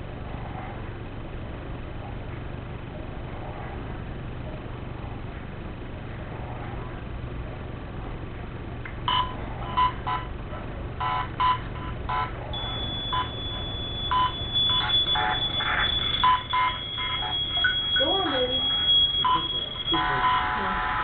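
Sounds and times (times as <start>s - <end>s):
choppy electronic beep fragments: 11.0s - 20.5s
steady high tone: 12.2s - 21.0s.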